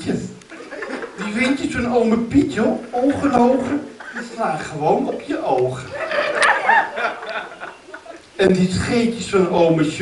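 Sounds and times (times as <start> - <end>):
group of people laughing: 0.5 - 1.2, 5.9 - 8.2.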